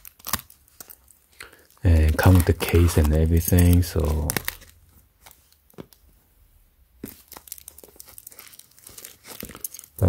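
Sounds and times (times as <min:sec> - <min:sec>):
plastic wrap crinkling: 0:00.0 - 0:06.1, 0:07.0 - 0:10.0.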